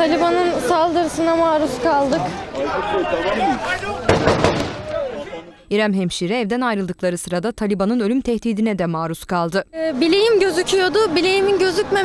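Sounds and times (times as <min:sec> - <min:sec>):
gunfire cracks: 0:04.1 - 0:05.0.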